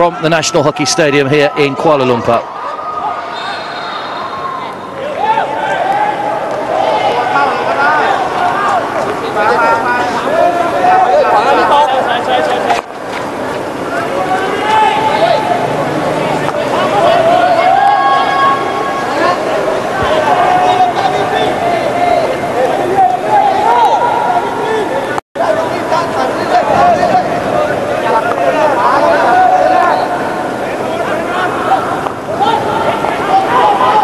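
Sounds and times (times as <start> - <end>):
crowd shouting and chattering: 0.0 - 34.0.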